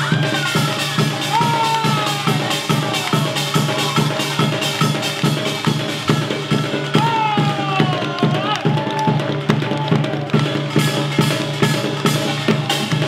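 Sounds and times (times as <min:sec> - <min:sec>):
drum strokes: 0:00.0 - 0:13.0.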